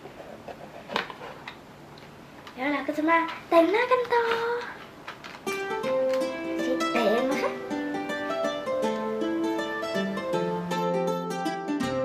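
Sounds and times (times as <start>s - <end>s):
high-pitched voice speaking: 6.6s - 7.6s.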